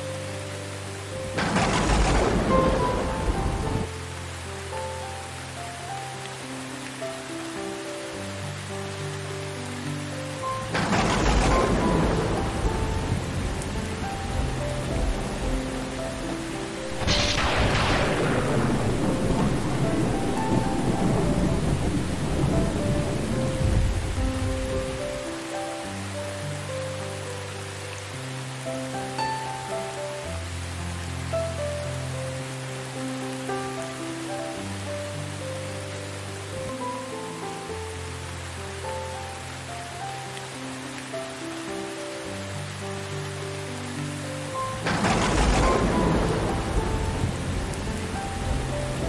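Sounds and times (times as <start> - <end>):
soft slow music: 0.0 - 49.0
steady rain: 0.0 - 49.0
thunder rumbling: 1.3 - 3.9, 10.6 - 25.3, 44.6 - 49.0.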